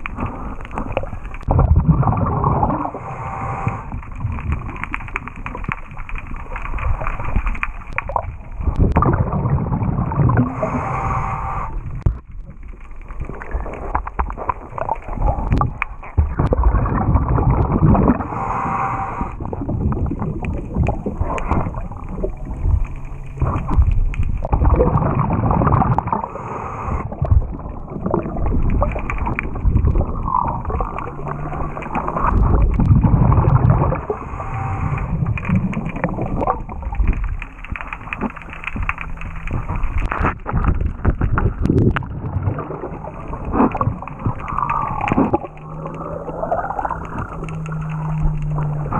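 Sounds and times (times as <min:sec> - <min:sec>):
exhaled bubbles rumbling: 0:00.0 - 0:48.9
underwater knocks and scrapes: 0:00.0 - 0:48.9
regulator inhale hiss: 0:02.8 - 0:04.0, 0:10.4 - 0:11.8, 0:18.2 - 0:19.4, 0:26.2 - 0:27.1, 0:34.0 - 0:35.3.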